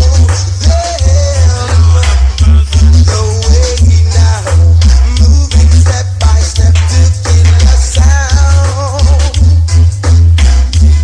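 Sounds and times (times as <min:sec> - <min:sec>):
person singing: 0:00.0 - 0:09.6
reggae music over sound system: 0:00.0 - 0:11.0.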